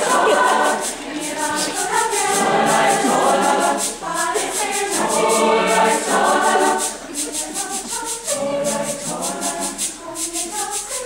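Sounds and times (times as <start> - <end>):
mixed choir singing: 0.0 - 11.0
shaker rhythm: 0.0 - 11.0.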